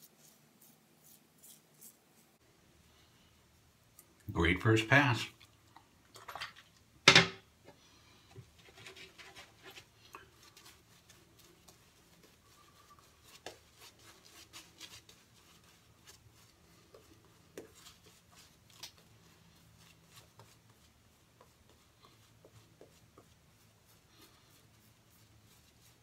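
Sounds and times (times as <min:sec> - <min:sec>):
shaving brush swishing on face: 0:00.0 - 0:02.4, 0:08.6 - 0:26.0.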